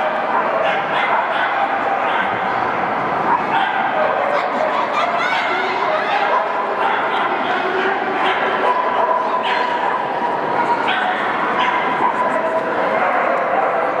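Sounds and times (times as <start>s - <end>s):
dogs yipping and barking: 0.0s - 2.6s, 3.2s - 14.0s
crowd murmur: 0.0s - 14.0s.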